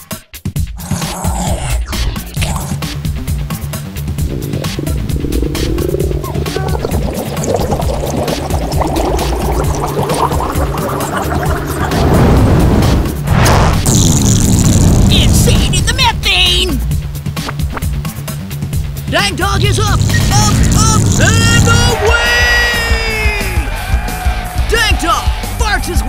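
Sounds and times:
electronic music with steady beat: 0:03.9 - 0:11.9
cartoon fart sound effects: 0:04.1 - 0:15.6, 0:19.4 - 0:22.0.

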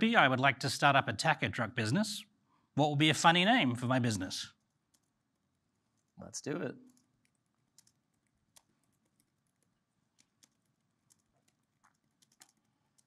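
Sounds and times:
keyboard typing: 0:04.6 - 0:05.2, 0:06.9 - 0:13.0.

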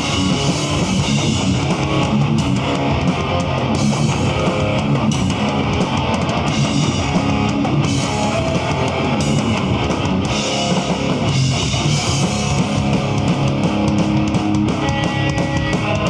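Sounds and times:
hardcore band playing live: 0:00.0 - 0:16.0.

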